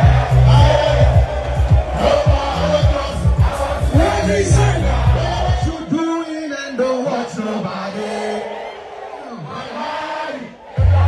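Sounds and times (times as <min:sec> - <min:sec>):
loud live concert music: 0:00.0 - 0:06.0, 0:10.8 - 0:11.0
crowd shouting along: 0:00.0 - 0:11.0.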